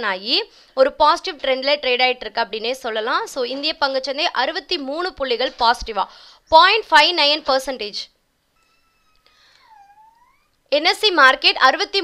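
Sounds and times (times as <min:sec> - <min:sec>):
faint drawn-out animal cry: 0:08.6 - 0:10.6.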